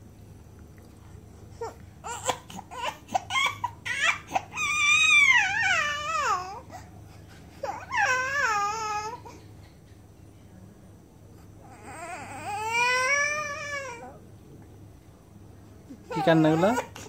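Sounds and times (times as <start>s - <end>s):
baby crying: 1.6s - 6.9s, 7.6s - 9.4s, 11.7s - 14.2s, 16.1s - 17.0s.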